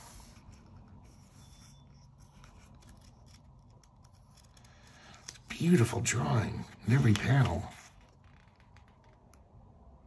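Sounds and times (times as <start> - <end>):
rustles of paper pages: 0.0 - 9.6.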